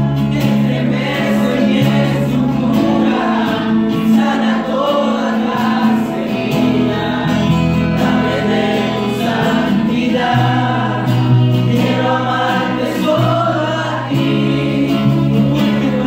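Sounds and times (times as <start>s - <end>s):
acoustic guitar: 0.0s - 16.0s
person singing worship music: 0.0s - 16.0s.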